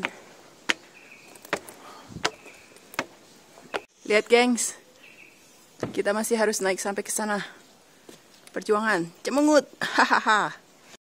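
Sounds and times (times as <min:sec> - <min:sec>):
footsteps climbing steps: 0:00.0 - 0:03.9.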